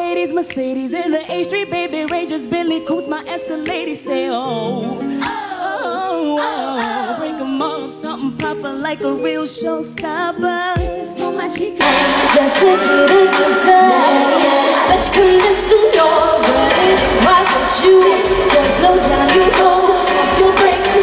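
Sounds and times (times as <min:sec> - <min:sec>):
backing track: 0:00.0 - 0:21.0
female vocal group singing pop: 0:00.0 - 0:21.0
deep bass: 0:14.8 - 0:21.0.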